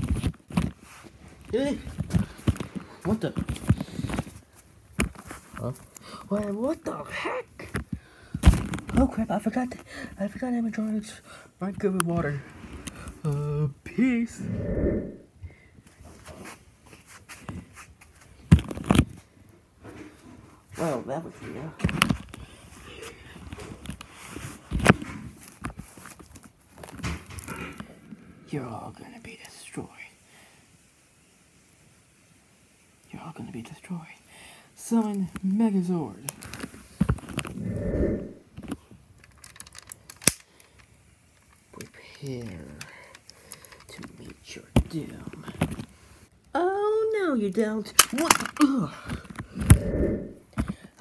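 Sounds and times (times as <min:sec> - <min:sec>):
rustling handling noise: 0:00.0 - 0:09.9, 0:15.8 - 0:28.0
low rumble: 0:14.3 - 0:15.3, 0:37.5 - 0:38.4, 0:49.6 - 0:50.4
plastic toy clicking and rattling: 0:39.2 - 0:44.4, 0:47.4 - 0:49.4.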